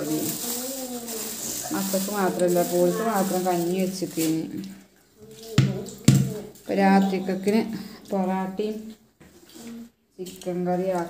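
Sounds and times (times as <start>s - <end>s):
woman talking: 0.0s - 0.4s, 1.6s - 4.7s, 6.6s - 9.0s, 10.2s - 11.0s.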